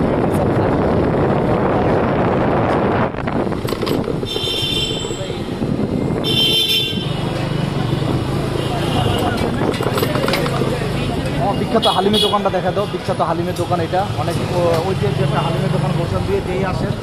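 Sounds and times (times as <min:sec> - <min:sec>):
street noise: 0:00.0 - 0:17.0
motorcycle engine humming: 0:00.7 - 0:12.3
voices: 0:06.9 - 0:17.0.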